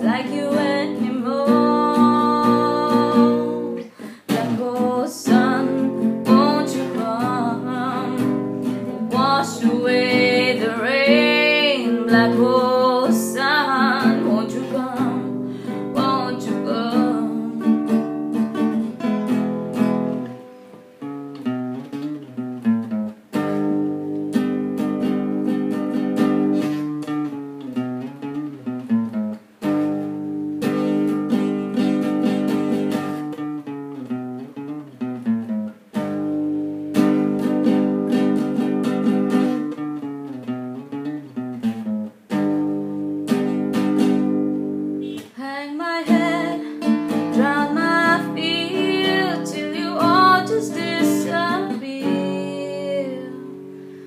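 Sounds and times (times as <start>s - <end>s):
woman singing: 0.0s - 18.0s, 45.1s - 53.6s
acoustic guitar strumming: 0.0s - 54.0s.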